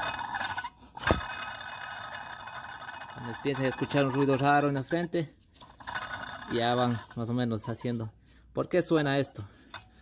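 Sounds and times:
water pump scraping rasp: 0.0s - 8.0s.

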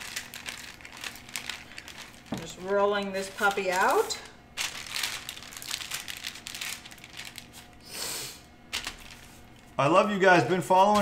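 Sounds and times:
parchment paper crinkling: 0.0s - 7.8s, 8.7s - 9.8s.

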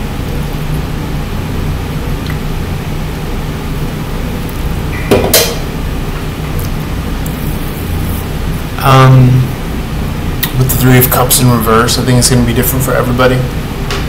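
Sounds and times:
low room hum: 0.0s - 14.0s.

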